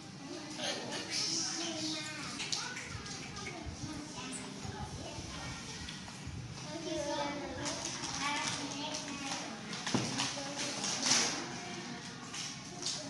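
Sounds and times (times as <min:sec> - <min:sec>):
young children talking: 0:00.1 - 0:13.0.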